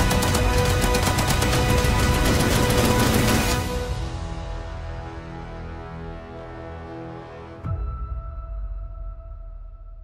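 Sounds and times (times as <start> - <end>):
machine-gun fire: 0.0 - 3.8
dramatic trailer music: 0.0 - 10.0.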